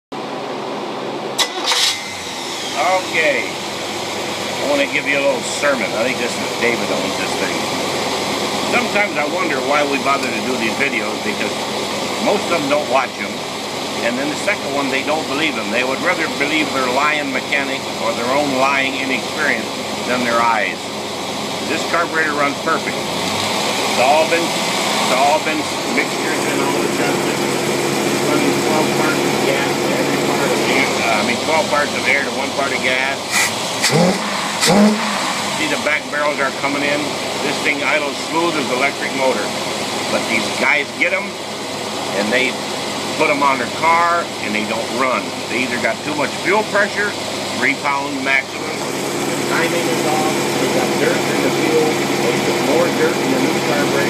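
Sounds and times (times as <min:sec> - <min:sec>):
engine running steadily: 0:00.2 - 0:54.0.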